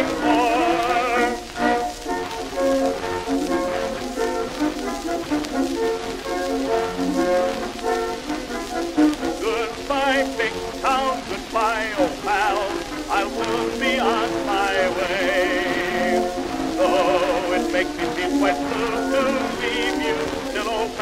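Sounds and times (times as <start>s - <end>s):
record surface hiss and crackle: 0.0s - 21.0s.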